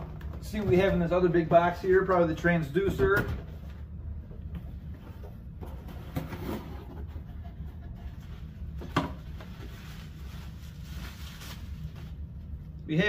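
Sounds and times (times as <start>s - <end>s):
steady low hum: 0.0s - 13.0s
cardboard and plastic rustling: 8.0s - 12.3s.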